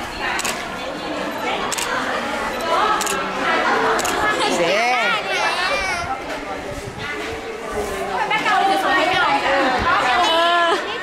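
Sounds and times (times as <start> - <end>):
high-pitched voices chattering: 0.0 - 11.0.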